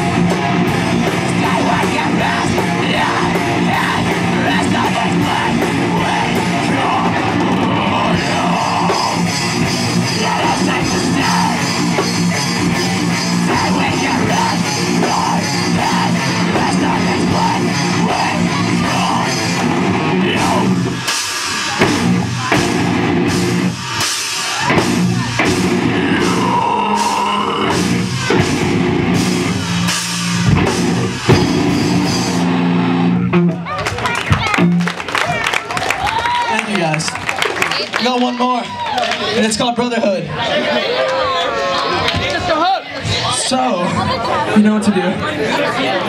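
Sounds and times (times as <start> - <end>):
live heavy rock band: 0.0 - 38.0.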